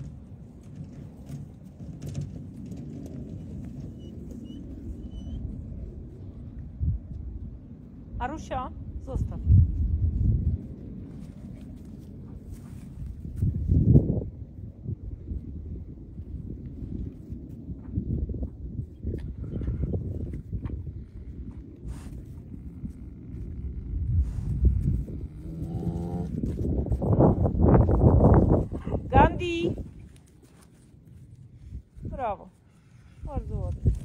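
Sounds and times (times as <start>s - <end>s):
dog whining: 3.9s - 5.5s
dogs growling: 25.2s - 26.4s.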